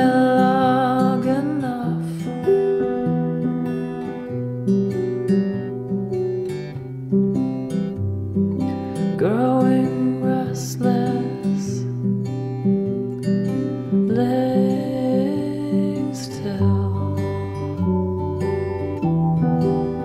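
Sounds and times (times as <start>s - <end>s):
acoustic guitar playing: 0.0s - 20.0s.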